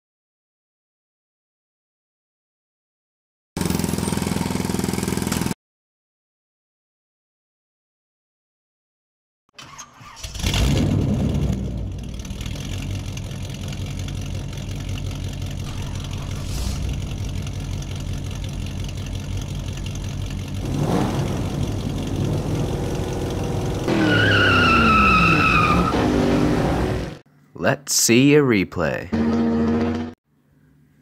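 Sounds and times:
car engine idling and revving: 10.2s - 27.2s, 29.1s - 30.2s.

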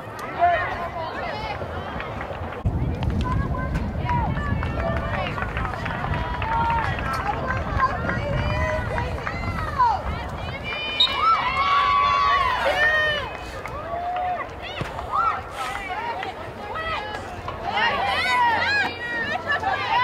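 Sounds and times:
spectators chatting: 0.0s - 20.0s
low microphone rumble: 1.5s - 13.9s.

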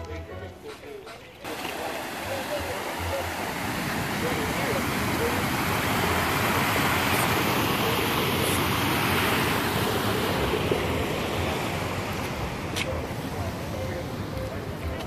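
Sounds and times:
voices: 0.0s - 15.0s
water rushing down rock cascade: 1.4s - 13.8s.

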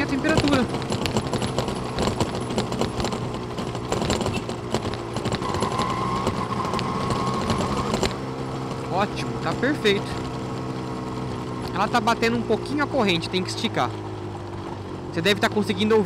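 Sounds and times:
two-stroke motorcycle engine cruising: 0.0s - 16.0s.

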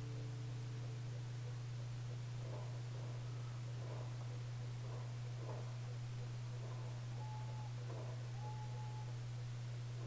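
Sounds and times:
steady low hum: 0.0s - 10.0s
faint short high tone: 7.2s - 9.2s.

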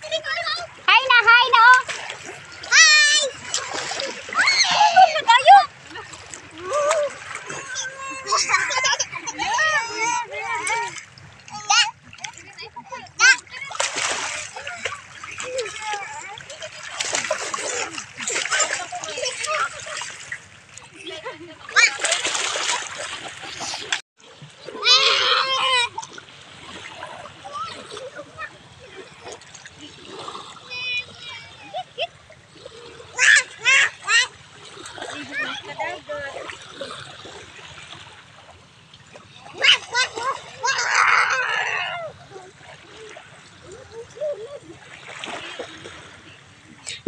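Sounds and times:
children's voices: 0.0s - 20.2s, 20.8s - 22.8s, 24.6s - 37.1s, 39.3s - 47.0s
children splashing in water: 0.0s - 47.0s
high-pitched shouts: 4.3s - 5.6s.

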